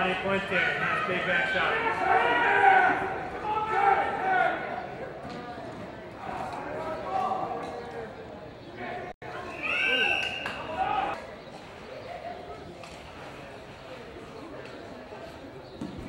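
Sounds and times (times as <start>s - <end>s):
indistinct voices talking: 0.0s - 15.8s.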